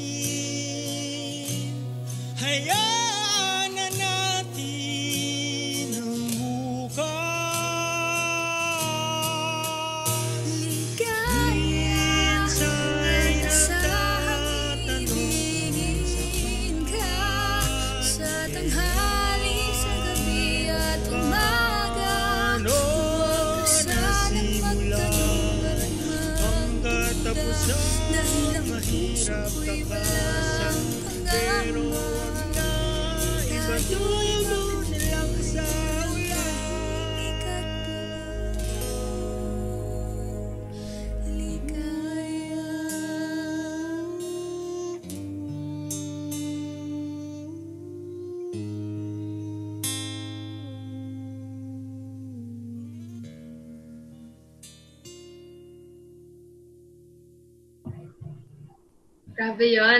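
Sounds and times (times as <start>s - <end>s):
person singing long note: 10.4s - 53.3s.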